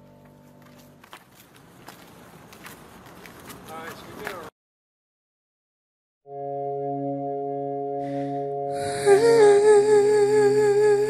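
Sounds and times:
sustained backing chords: 0.0s - 1.1s, 6.3s - 11.0s.

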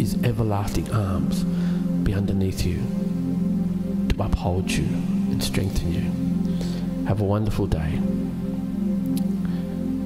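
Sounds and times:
electronic keyboard chords: 0.0s - 10.0s.

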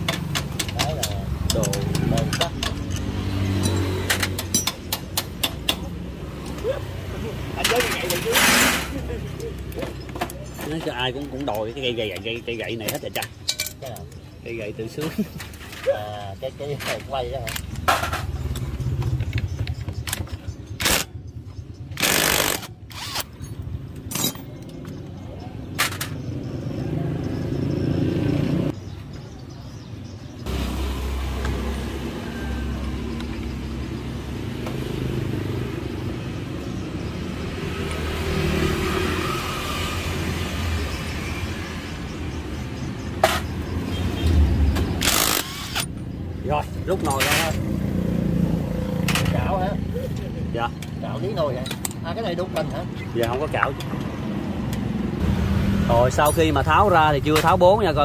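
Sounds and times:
air impact wrench bursts: 22.0s - 23.4s, 45.0s - 46.0s.

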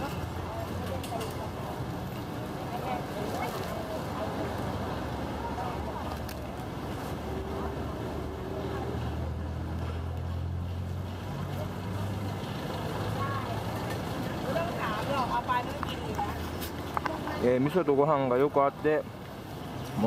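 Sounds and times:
voices: 0.0s - 10.5s, 11.2s - 20.0s
vehicle engine hum: 0.0s - 17.7s
passing traffic: 0.0s - 20.0s.

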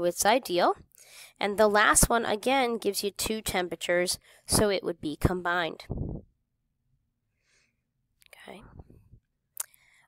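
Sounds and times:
quiet whisper-like vocal sound: 8.2s - 10.0s.

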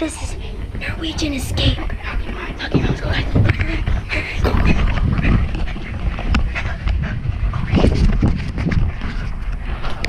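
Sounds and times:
steady rumble: 0.0s - 10.0s
person panting hard: 2.0s - 8.3s.

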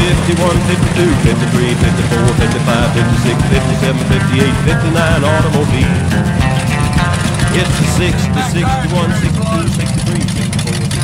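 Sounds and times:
man talking: 0.0s - 6.0s, 7.4s - 11.0s
truck engine rumble: 0.0s - 11.0s.

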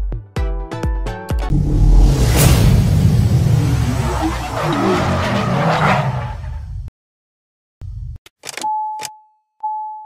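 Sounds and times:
logo sting music: 1.5s - 4.2s
car engine revving: 1.5s - 6.7s
tyres screeching: 3.8s - 6.7s.

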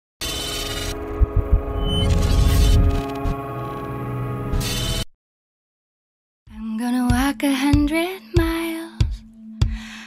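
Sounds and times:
sustained synth chord: 0.7s - 5.0s
low rumble: 0.9s - 4.6s.

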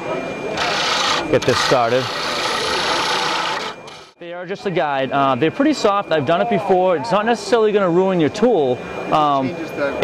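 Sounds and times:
turning tool cutting wood: 0.6s - 4.1s
wood lathe spinning: 0.6s - 4.1s.

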